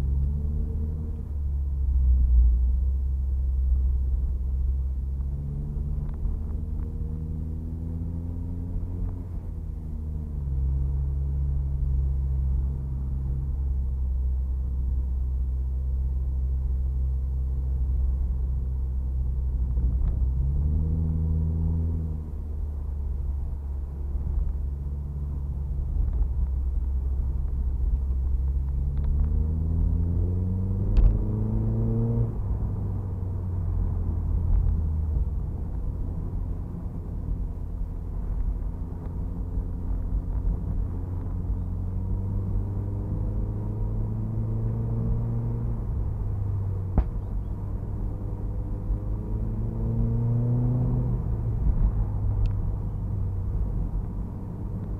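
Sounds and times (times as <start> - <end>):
car engine accelerating: 0.0 - 54.9.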